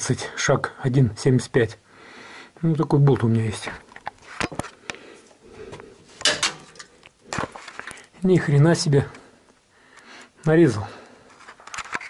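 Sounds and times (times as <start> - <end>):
metal tap cracking: 6.2 - 7.6.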